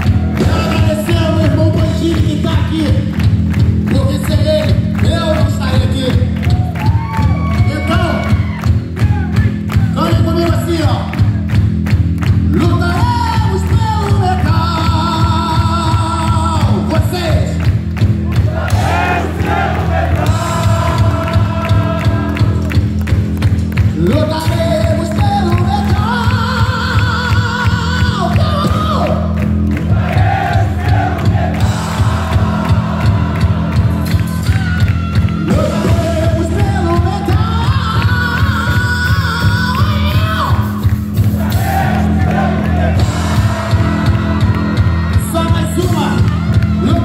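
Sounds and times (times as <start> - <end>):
live rock band playing: 0.0 - 47.0.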